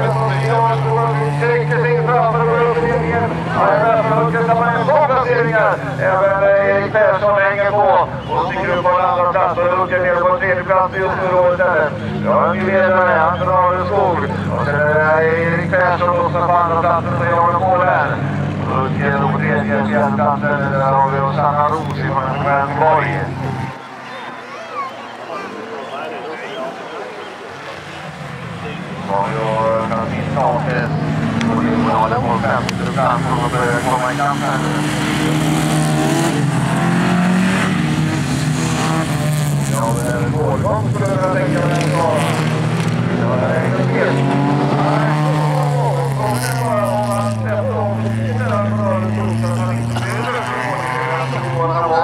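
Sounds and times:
race car engines under load: 0.0s - 52.0s.

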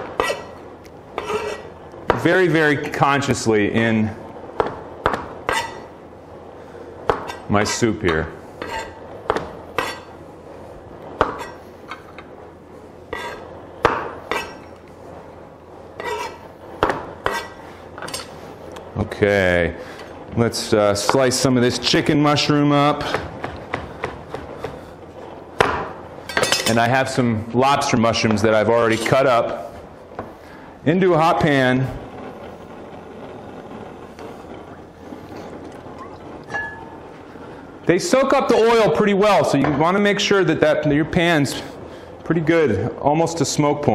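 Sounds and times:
oil hissing in a hot pan: 0.0s - 40.4s.

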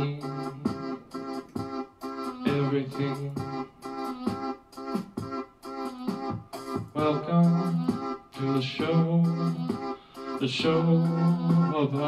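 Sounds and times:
electronic keyboard organ chords: 0.0s - 12.0s.

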